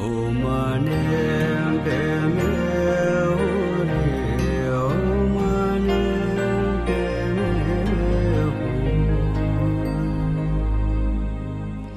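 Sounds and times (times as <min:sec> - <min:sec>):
steady low drone: 0:00.0 - 0:11.9.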